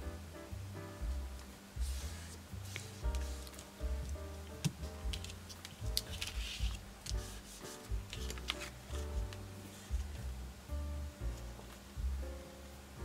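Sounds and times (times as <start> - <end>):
background music with bass line: 0.0 - 13.0
papery slide: 1.8 - 3.8, 5.2 - 10.0
paper being handled: 1.8 - 10.1.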